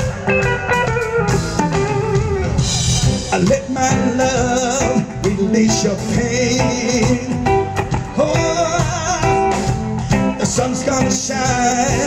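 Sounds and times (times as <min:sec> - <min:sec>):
electric guitar vibrato melody: 0:00.0 - 0:12.0
steady drum beat: 0:00.0 - 0:12.0.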